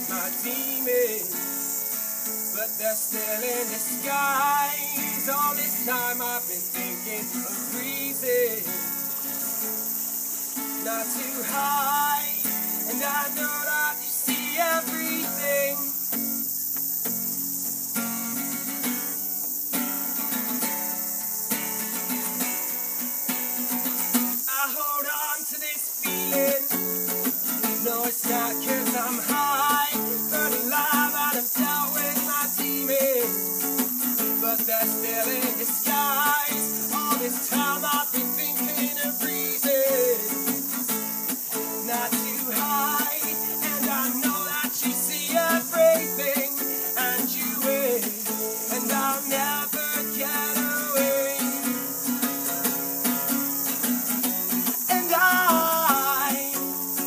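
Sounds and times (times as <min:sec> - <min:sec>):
acoustic guitar: 0:00.0 - 0:57.0
cicadas droning: 0:00.0 - 0:57.0.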